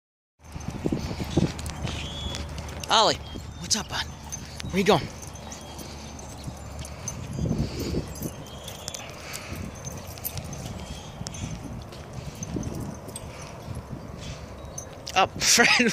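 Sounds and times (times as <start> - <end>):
footsteps on dry dirt: 0.4 - 14.6.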